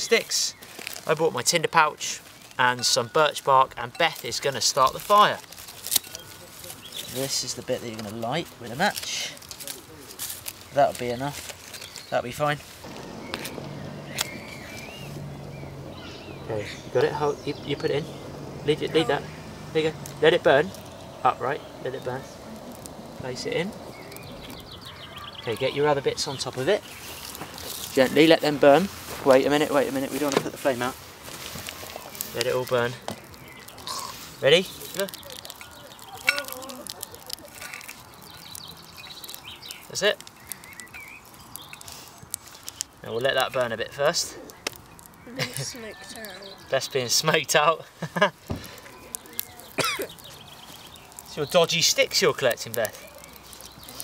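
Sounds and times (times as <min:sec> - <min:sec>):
birds chirping: 0:00.0 - 0:54.0
twig fire crackling and popping: 0:00.0 - 0:54.0
sticks laid on fire: 0:03.8 - 0:15.6, 0:26.2 - 0:46.4, 0:47.2 - 0:54.0
match striking box: 0:12.8 - 0:15.0.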